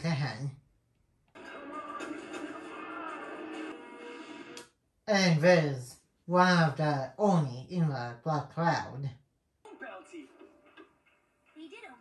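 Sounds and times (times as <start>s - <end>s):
soundtrack music through television: 1.2s - 4.8s, 9.6s - 12.0s.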